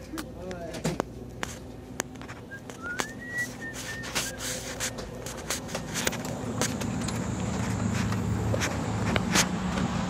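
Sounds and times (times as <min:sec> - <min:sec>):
steady low hum: 0:00.0 - 0:09.7
high thin whistle: 0:02.5 - 0:05.0.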